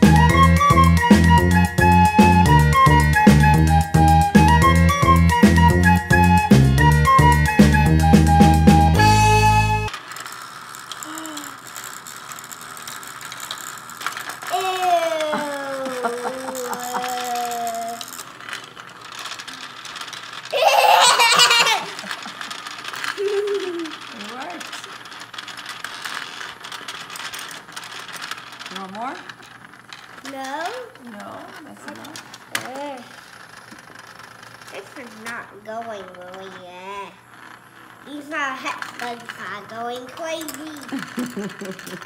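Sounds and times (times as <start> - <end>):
robot bugs buzzing and rattling: 0.2 - 42.0
child squealing with laughter: 14.5 - 17.9, 20.5 - 22.3, 23.2 - 23.9
child calling: 14.5 - 18.1.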